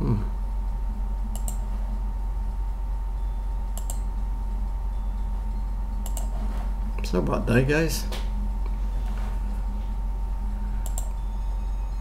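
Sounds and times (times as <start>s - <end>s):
low electrical hum: 0.0s - 12.0s
computer mouse clicking: 1.3s - 1.7s, 3.8s - 4.1s, 6.0s - 6.4s, 10.8s - 11.2s.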